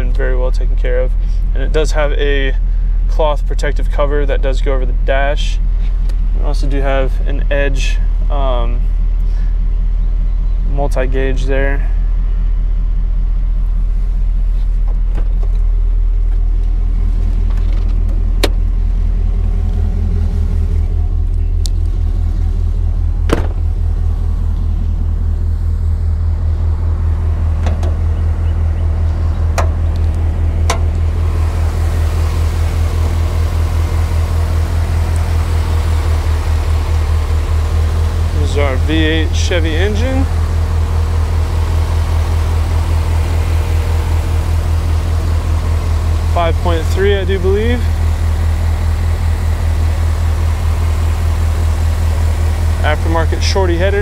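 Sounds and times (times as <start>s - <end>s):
truck engine idling: 0.0s - 54.0s
sharp clicks and knocks: 17.3s - 18.7s, 27.6s - 28.1s, 29.5s - 31.0s.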